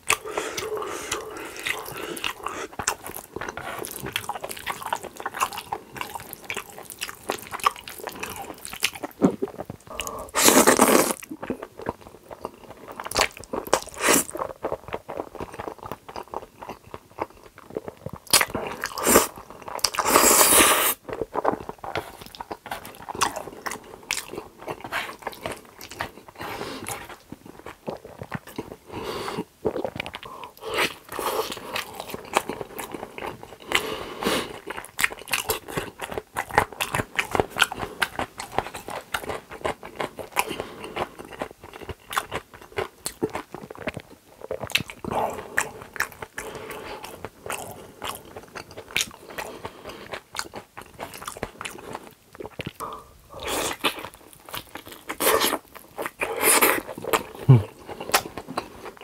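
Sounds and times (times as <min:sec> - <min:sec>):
person chewing food: 0:00.0 - 0:59.0.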